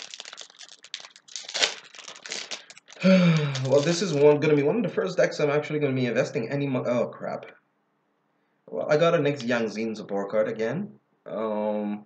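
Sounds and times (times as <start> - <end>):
foil wrapper crinkling: 0.0 - 4.4.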